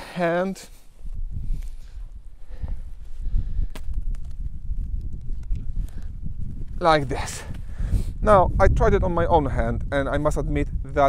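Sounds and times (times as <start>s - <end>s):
wind rumble on microphone: 0.7s - 11.0s
tape tourniquet snapping: 3.6s - 6.1s.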